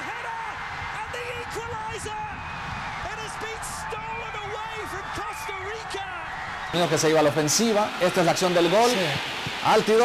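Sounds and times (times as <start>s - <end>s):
man's excited voice: 0.0s - 2.4s, 3.0s - 10.0s
stadium crowd cheering: 0.0s - 10.0s.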